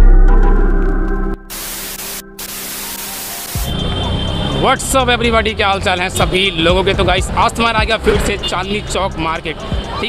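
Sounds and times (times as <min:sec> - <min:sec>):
background music: 0:00.0 - 0:10.0
television static hiss: 0:01.5 - 0:03.6.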